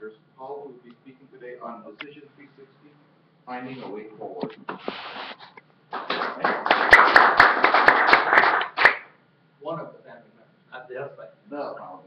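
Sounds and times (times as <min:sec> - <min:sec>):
audience applauding: 0:05.9 - 0:09.1.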